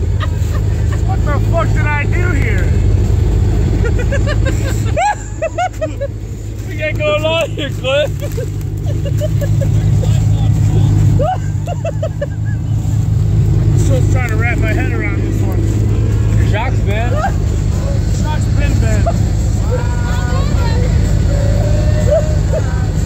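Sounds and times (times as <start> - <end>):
truck engine idling: 0.0 - 23.0.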